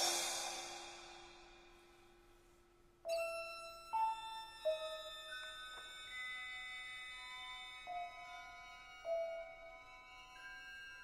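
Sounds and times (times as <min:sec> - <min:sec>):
orchestral noisy swell: 0:00.0 - 0:01.5.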